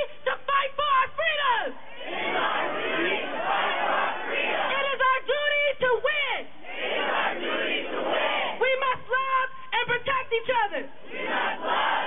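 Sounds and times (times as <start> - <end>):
crowd chanting: 1.8 - 4.9, 6.6 - 8.6, 11.0 - 12.0.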